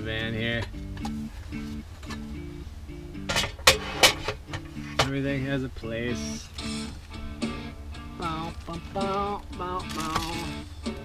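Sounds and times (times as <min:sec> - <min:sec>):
plucked guitar melody: 0:00.0 - 0:11.0
objects knocking being set down: 0:03.3 - 0:05.1.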